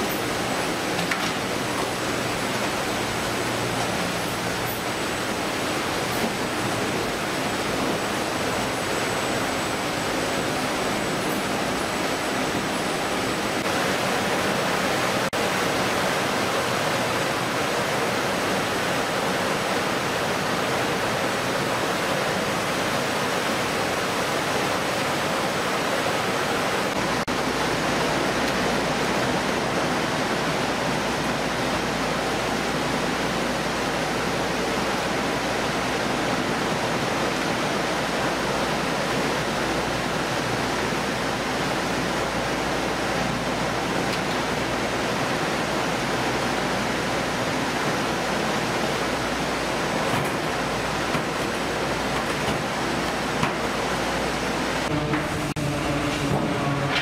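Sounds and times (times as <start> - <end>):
water sprays rushing: 0.0 - 57.0
running machinery: 46.5 - 57.0.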